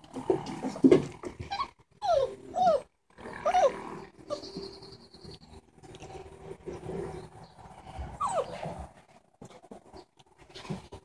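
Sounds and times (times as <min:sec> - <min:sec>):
puppy whining: 0:00.6 - 0:05.4, 0:08.0 - 0:09.0.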